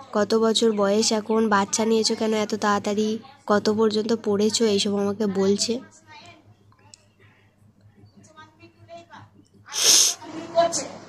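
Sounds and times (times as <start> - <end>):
person sneezing: 9.7 - 10.2.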